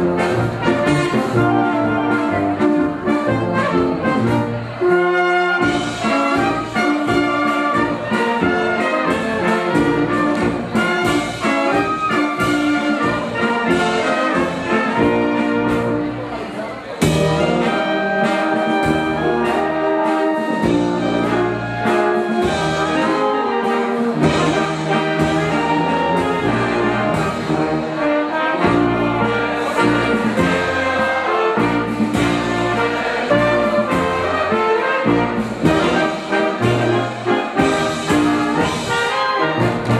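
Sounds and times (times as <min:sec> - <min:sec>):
brass band playing dance music: 0:00.0 - 0:39.9.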